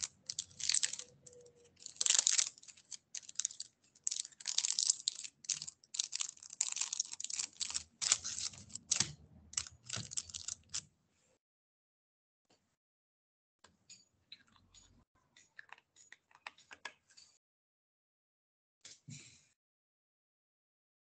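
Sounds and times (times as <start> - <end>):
keyboard typing: 0.0 - 10.8.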